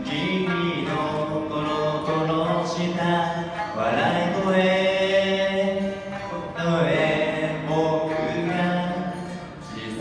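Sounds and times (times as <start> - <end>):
guitar accompaniment: 0.0 - 10.0.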